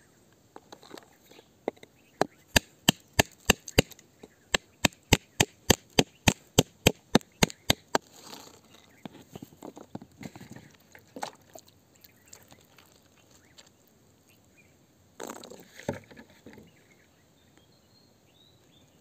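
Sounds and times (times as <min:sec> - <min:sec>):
scraping: 0:07.9 - 0:10.8.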